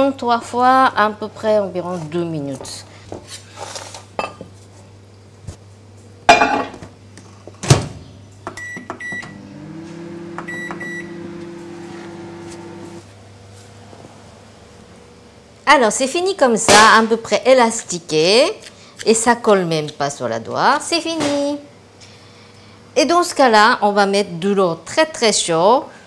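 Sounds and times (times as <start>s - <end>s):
microwave oven humming: 3.9s - 16.4s.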